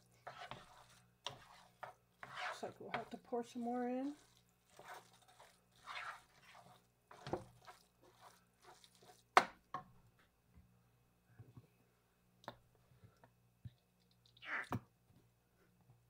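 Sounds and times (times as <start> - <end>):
wooden spoon scraping rice in skillet: 0.0 - 9.4.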